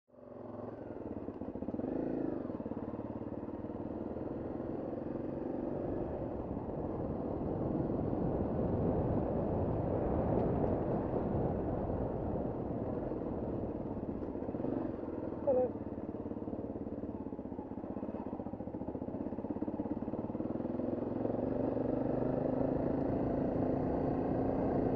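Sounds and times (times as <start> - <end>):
motorcycle engine running: 0.1 - 24.9.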